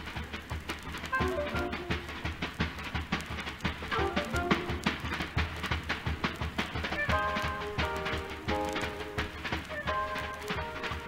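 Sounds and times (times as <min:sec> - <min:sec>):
drum kit quick strokes: 0:00.0 - 0:11.0.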